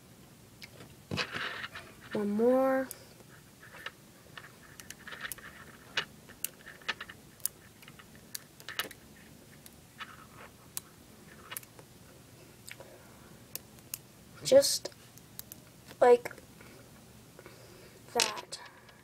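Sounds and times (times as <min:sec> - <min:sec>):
magnet beads clicking: 0:03.8 - 0:09.0.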